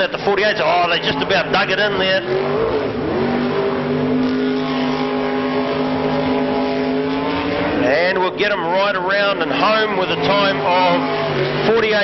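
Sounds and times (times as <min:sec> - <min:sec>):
boat engine at high revs: 0:00.0 - 0:12.0.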